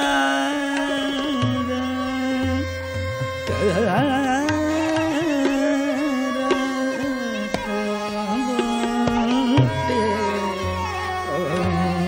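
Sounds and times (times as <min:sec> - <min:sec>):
man singing ornamented notes: 0:00.0 - 0:12.0
tabla: 0:00.0 - 0:12.0
tanpura drone: 0:00.0 - 0:12.0.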